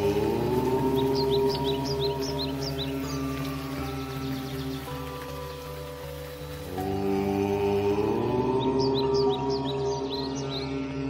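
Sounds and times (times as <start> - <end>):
person chanting om: 0.0 - 5.9, 6.5 - 11.0
birds chirping: 0.0 - 11.0
soft ambient music: 0.0 - 11.0.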